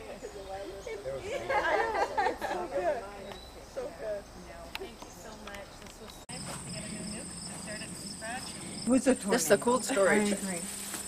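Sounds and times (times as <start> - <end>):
crickets trilling: 6.3 - 11.0.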